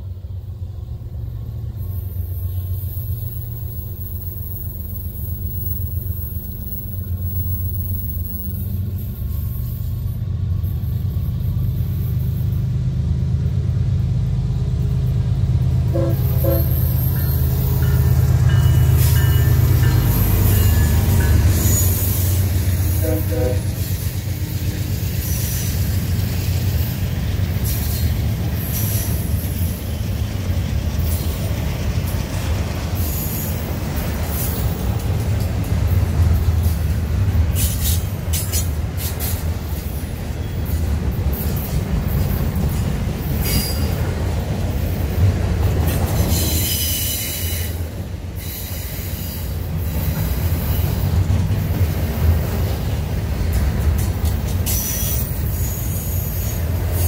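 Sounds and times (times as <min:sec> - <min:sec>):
diesel locomotive engine rumble: 0:00.0 - 0:57.0
train wheels clicking over rails: 0:10.8 - 0:57.0
train horn blasts: 0:15.8 - 0:17.2, 0:22.7 - 0:24.0.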